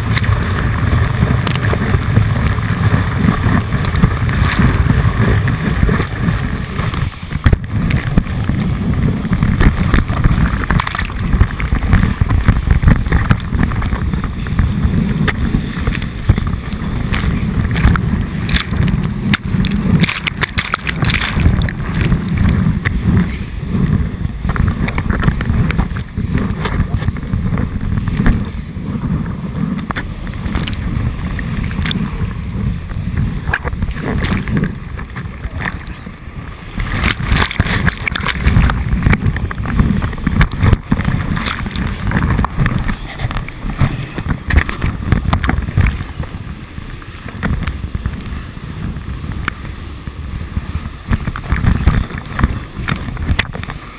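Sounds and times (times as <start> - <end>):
whitewater rushing and splashing: 0.0 - 53.9.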